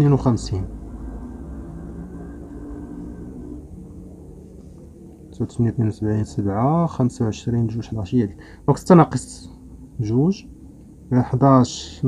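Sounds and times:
low steady rumble with hum: 0.0s - 12.0s.

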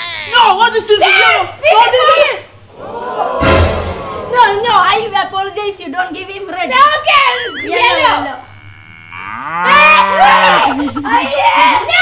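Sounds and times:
long vocal cry: 7.5s - 11.8s.

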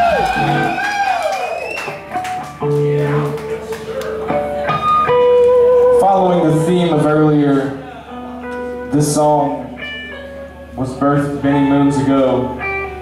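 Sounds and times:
electric guitar sustained notes: 0.0s - 13.0s.

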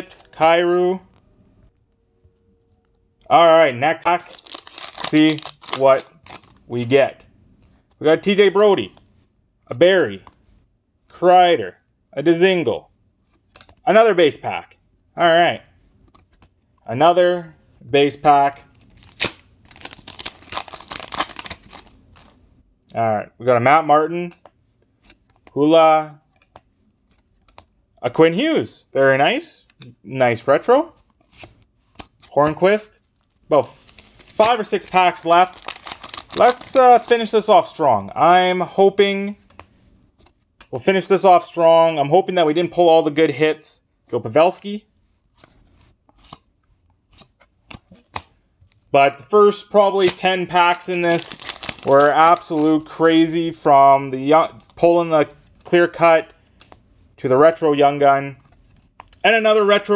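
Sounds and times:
foil wrapper crinkling: 4.1s - 6.6s, 19.0s - 22.3s, 33.8s - 37.3s, 50.0s - 52.9s.

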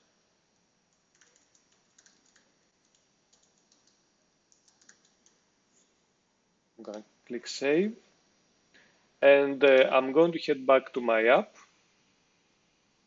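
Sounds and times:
typing on a computer keyboard: 0.9s - 5.4s.

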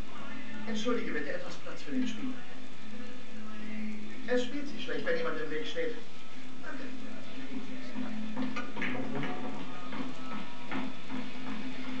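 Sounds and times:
film soundtrack from television: 0.0s - 12.0s.

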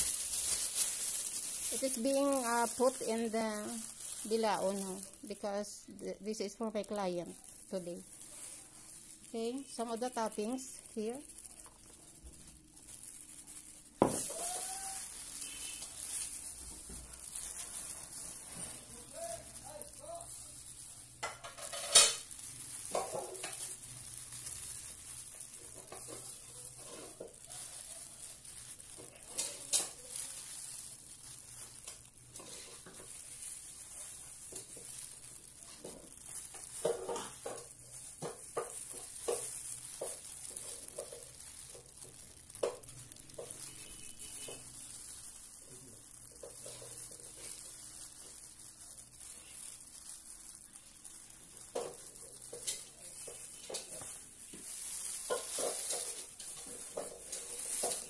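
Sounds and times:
faint steady hiss: 0.0s - 58.0s
plastic gloves crinkling: 0.0s - 58.0s.

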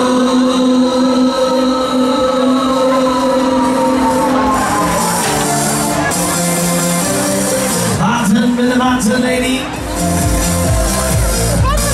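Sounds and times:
held synth chord: 0.0s - 8.0s.

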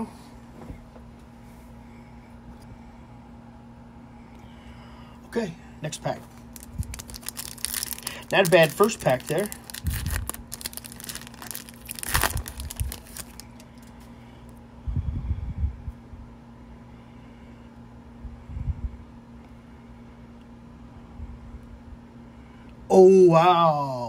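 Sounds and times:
steady low hum: 0.0s - 24.0s
cards being handled: 6.3s - 14.0s
foil wrapper tearing and crinkling: 6.4s - 14.0s.

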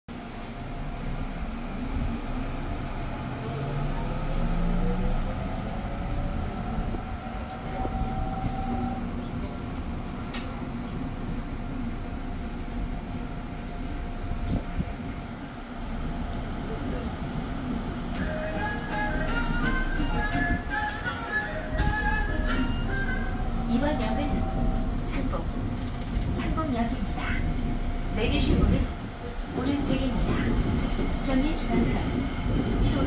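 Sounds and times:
train wheels rumbling: 0.2s - 33.0s.

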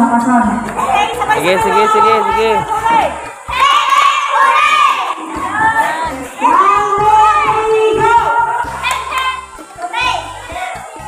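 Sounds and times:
children shouting: 0.8s - 11.0s.

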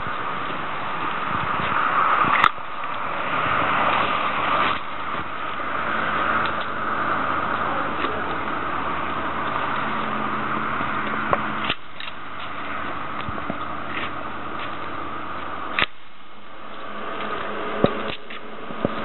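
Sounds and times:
low engine hum: 0.0s - 19.0s
road traffic noise: 0.0s - 19.0s
pruner blade snipping: 11.3s - 12.2s, 15.7s - 16.0s.

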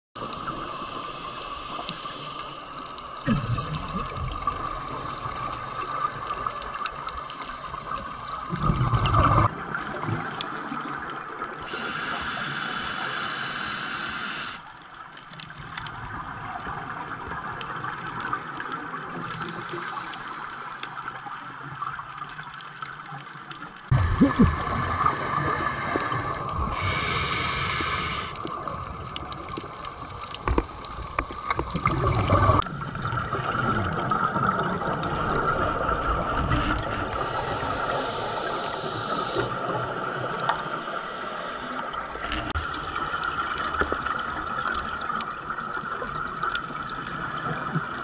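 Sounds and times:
underwater watery hiss: 0.2s - 9.6s, 11.4s - 14.8s, 19.4s - 22.0s, 23.9s - 29.4s, 34.7s - 45.2s
scuba exhaust bubbles rushing: 8.4s - 10.6s, 23.9s - 48.0s.

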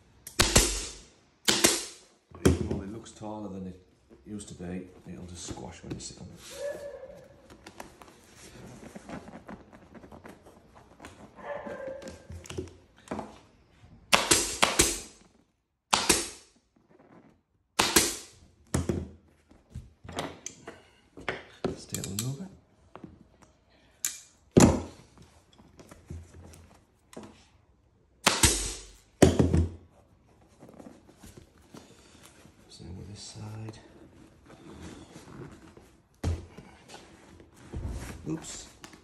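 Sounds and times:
pneumatic staple gun shots: 0.3s - 2.1s, 14.1s - 15.2s, 15.9s - 16.5s, 17.8s - 18.3s, 28.2s - 29.0s
vinyl cover scuffing: 4.9s - 12.4s, 29.9s - 39.0s.

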